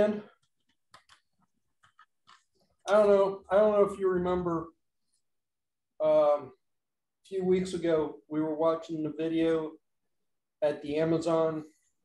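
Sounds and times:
man speaking: 0:00.0 - 0:00.4, 0:02.9 - 0:04.8, 0:06.0 - 0:06.6, 0:07.2 - 0:09.8, 0:10.6 - 0:11.8.

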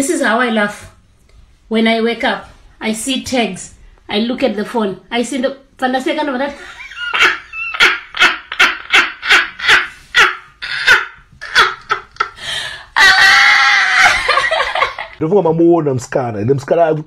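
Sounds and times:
woman laughing loudly: 0:06.5 - 0:15.2.

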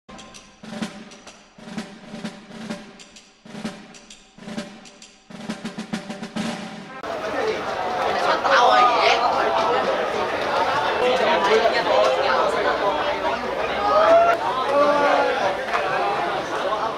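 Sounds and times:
intro music with drum rolls: 0:00.1 - 0:08.7
chatter of voices outdoors: 0:06.8 - 0:16.9.

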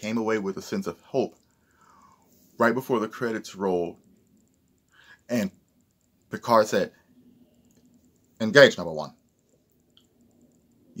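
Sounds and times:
faint click: 0:09.3 - 0:11.0.

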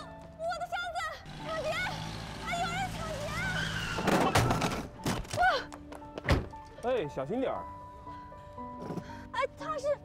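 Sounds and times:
woman shouting: 0:00.4 - 0:03.8.

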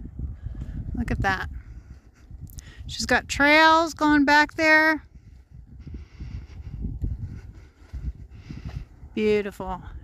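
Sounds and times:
low rumbling microphone noise: 0:00.0 - 0:10.0.

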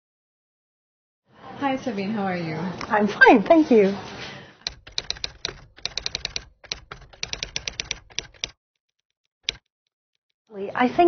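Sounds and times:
typewriter keystroke clicks: 0:04.7 - 0:08.6, 0:09.4 - 0:09.7.

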